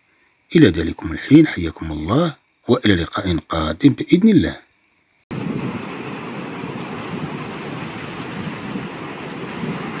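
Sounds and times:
wind-like rushing: 0:05.3 - 0:10.0.

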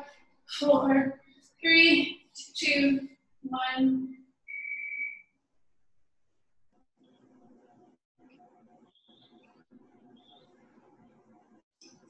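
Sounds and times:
high whistle: 0:04.5 - 0:05.3.

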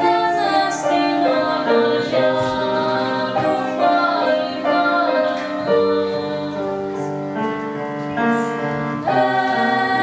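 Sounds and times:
grand piano playing held chords: 0:00.0 - 0:10.0.

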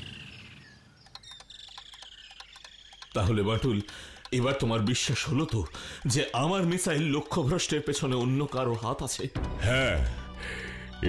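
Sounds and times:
faint high chirps: 0:00.0 - 0:04.2.

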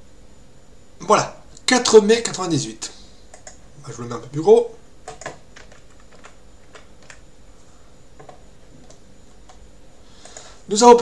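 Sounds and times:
computer keyboard keystrokes: 0:03.3 - 0:03.6, 0:05.0 - 0:07.2.

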